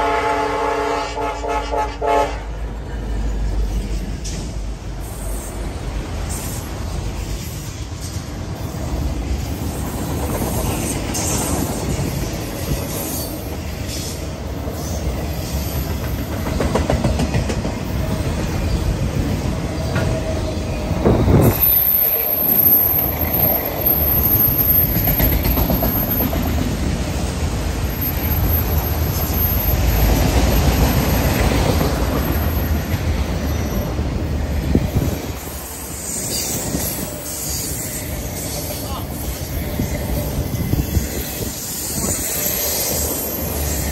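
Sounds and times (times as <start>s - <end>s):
steel wheels rumbling on rail: 0.0s - 43.9s
clickety-clack over rail joints: 2.3s - 21.8s, 22.9s - 43.9s
high wheel squeal: 19.8s - 26.6s, 27.8s - 31.4s, 32.1s - 43.9s.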